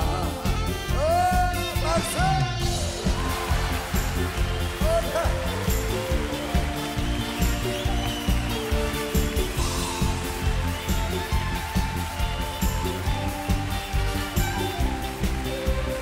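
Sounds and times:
steady drum beat: 0:00.0 - 0:16.0.

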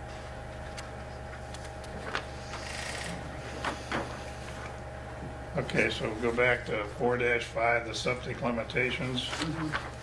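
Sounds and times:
low electrical hum: 0:00.0 - 0:10.0
paper pages rustling: 0:00.7 - 0:02.6, 0:08.9 - 0:10.0.

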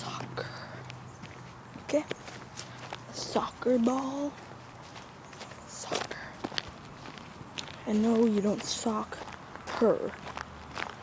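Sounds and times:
person speaking: 0:00.0 - 0:00.8, 0:01.7 - 0:04.6, 0:05.6 - 0:06.5, 0:07.7 - 0:10.2
footsteps walking: 0:00.1 - 0:11.0.

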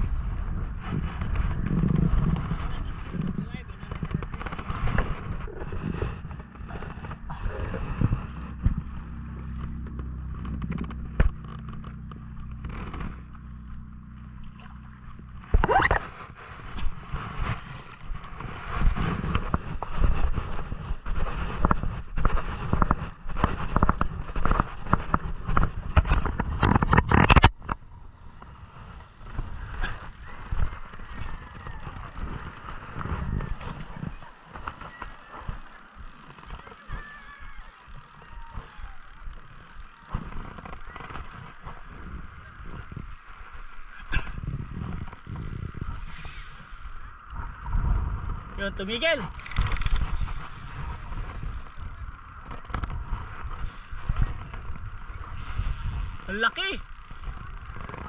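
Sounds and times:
outdoor noise rush: 0:00.0 - 0:58.0
wind rumbling on microphone: 0:00.0 - 0:58.0.

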